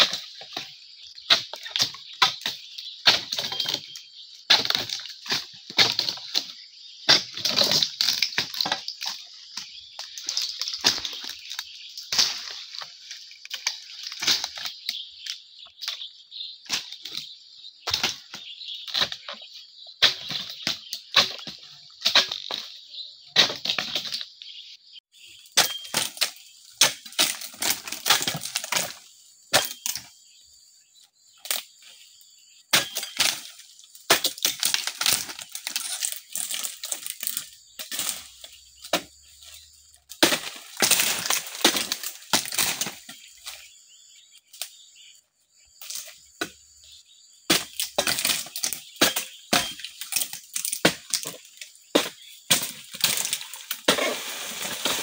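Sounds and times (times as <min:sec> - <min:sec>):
fronds cracking and rustling: 0:00.0 - 0:22.8, 0:25.2 - 0:30.1, 0:32.8 - 0:55.0
chisel chopping into palm fronds: 0:32.8 - 0:38.1, 0:38.8 - 0:43.7.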